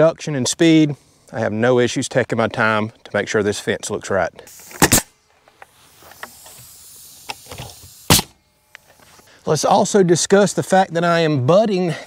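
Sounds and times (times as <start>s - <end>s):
nail gun firing: 4.6s - 8.4s.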